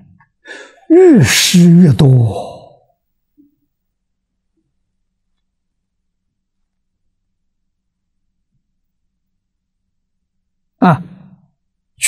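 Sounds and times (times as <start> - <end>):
man's short vocal sound: 0.9 - 2.6.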